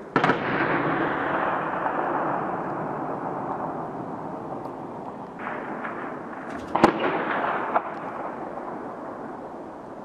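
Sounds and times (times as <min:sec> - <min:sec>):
loud bang with rolling echo: 0:00.0 - 0:09.3.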